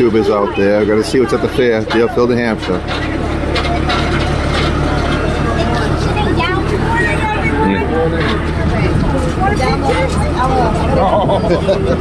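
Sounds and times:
people talking: 0:00.0 - 0:12.0
tractor engine running: 0:00.0 - 0:12.0.

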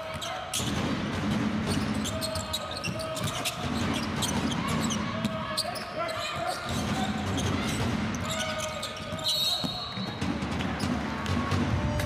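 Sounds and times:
sneakers squeaking: 0:00.0 - 0:00.8, 0:01.6 - 0:11.0.

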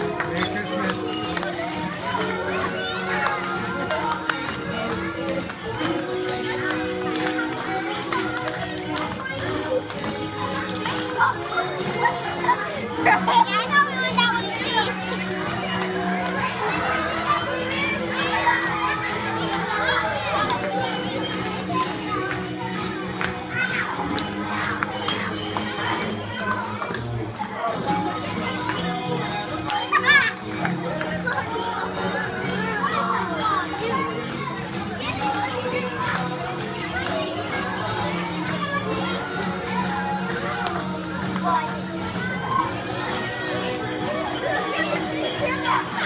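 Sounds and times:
background music: 0:00.0 - 0:46.0
children chattering and shouting: 0:00.0 - 0:46.0.

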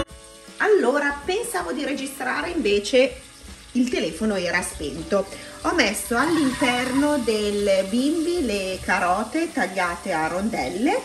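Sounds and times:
woman talking: 0:00.6 - 0:03.2, 0:03.8 - 0:11.0.

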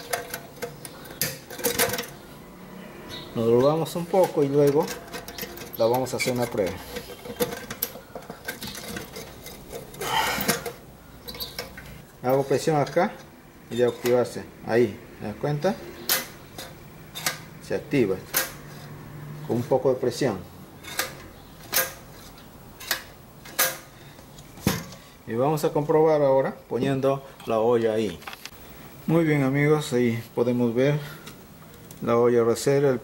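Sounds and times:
hands handling metal parts: 0:00.0 - 0:02.5, 0:03.1 - 0:14.4, 0:16.0 - 0:19.8, 0:20.7 - 0:25.2
scraping and rustling: 0:03.1 - 0:12.0.

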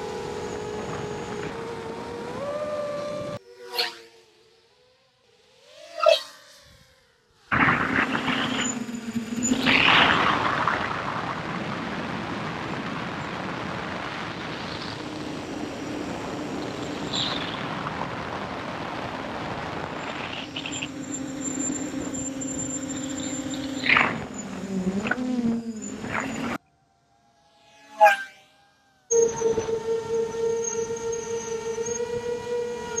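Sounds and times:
drone motors whining: 0:00.0 - 0:33.0
loud rushing noise with hum: 0:07.5 - 0:26.6.

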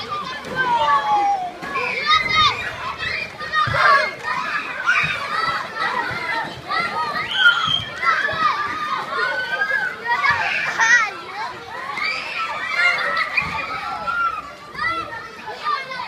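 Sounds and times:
children shouting and chattering: 0:00.0 - 0:16.0.

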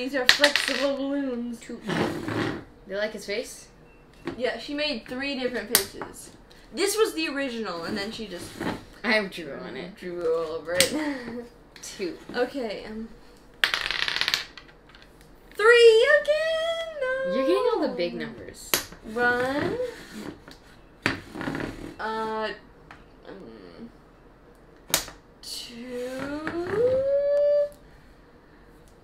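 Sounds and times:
person singing rising ooh: 0:26.0 - 0:27.8.

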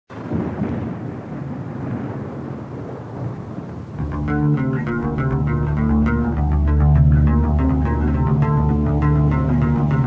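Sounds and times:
thunder-like rumbling: 0:00.1 - 0:08.4.

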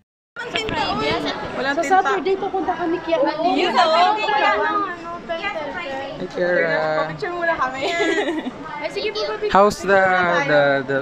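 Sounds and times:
several people talking: 0:00.4 - 0:11.0.

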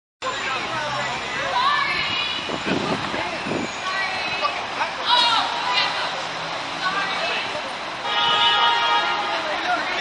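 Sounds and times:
people talking on a street: 0:00.2 - 0:10.0
steady traffic noise: 0:00.2 - 0:10.0.

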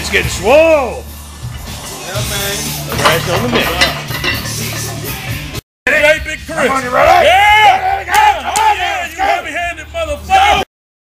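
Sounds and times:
men yelling: 0:05.9 - 0:10.7.

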